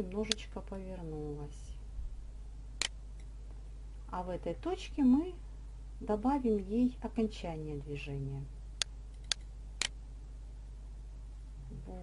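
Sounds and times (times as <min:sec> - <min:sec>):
steady low hum: 0:00.0 - 0:12.0
computer mouse clicking: 0:08.8 - 0:10.0.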